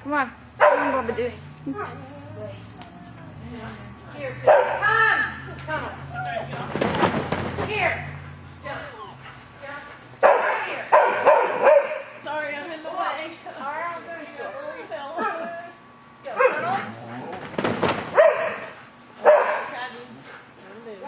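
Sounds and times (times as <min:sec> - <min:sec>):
dog barking: 0:00.6 - 0:01.1, 0:04.4 - 0:04.8, 0:10.2 - 0:12.1, 0:18.1 - 0:19.8.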